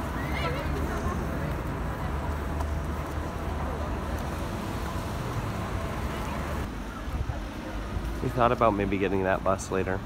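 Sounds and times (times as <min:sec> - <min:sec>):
low rumble of vehicles: 0:00.0 - 0:10.0.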